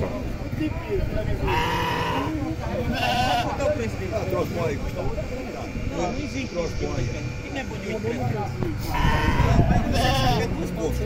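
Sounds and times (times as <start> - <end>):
murmur of people talking: 0.0 - 11.0
livestock bleating: 1.4 - 3.6, 8.8 - 10.6.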